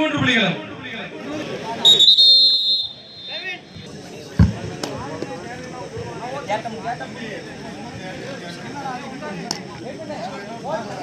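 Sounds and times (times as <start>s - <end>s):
crowd voices: 0.0s - 11.0s
shrill whistle blast: 1.8s - 3.8s.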